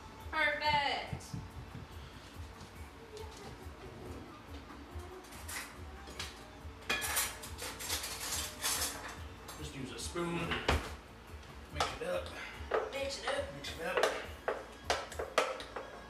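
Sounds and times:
metal pot and utensils clattering: 6.8s - 9.7s.

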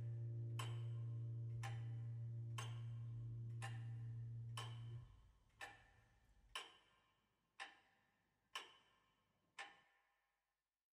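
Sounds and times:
mechanical clock ticking: 0.0s - 7.0s, 8.5s - 9.0s.

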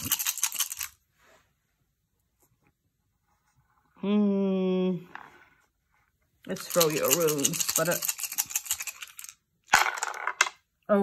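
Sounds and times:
wooden tiles rattling in hands: 0.0s - 1.0s, 6.5s - 10.6s
tiles clattering onto board: 6.8s - 10.6s.

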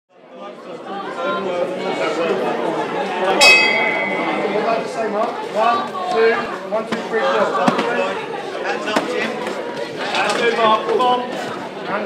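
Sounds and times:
people chattering: 0.1s - 12.0s.

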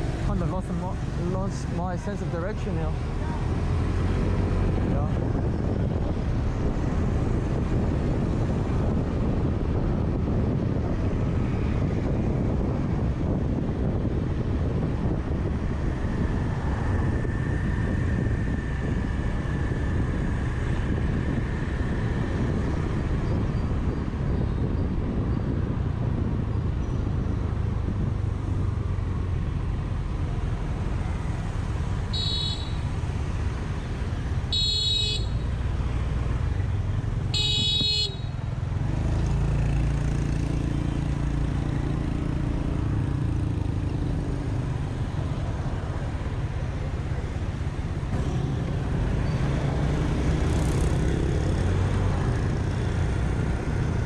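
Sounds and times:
wind rush: 0.0s - 34.5s, 35.6s - 54.0s
traffic: 0.0s - 54.0s.

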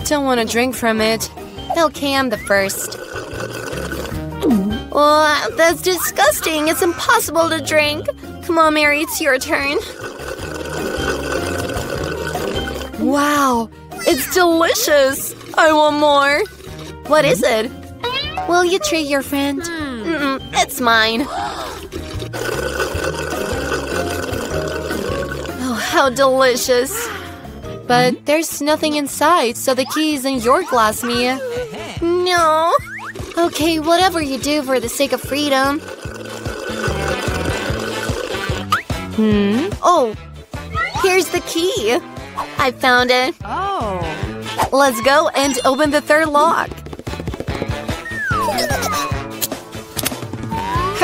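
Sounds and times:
slurping through a straw: 0.8s - 13.1s, 13.9s - 17.8s, 20.1s - 28.1s, 29.6s - 39.2s
background music with bass line: 4.1s - 25.9s, 27.1s - 28.3s, 36.8s - 41.2s, 41.8s - 44.8s.

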